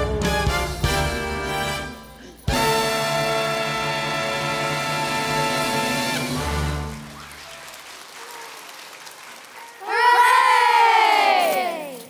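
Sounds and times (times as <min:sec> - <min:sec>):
faint audience applause: 0:05.8 - 0:11.3.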